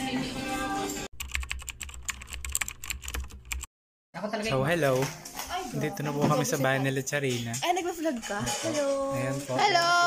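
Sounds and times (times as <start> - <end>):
keyboard typing clicks: 1.2 - 3.7.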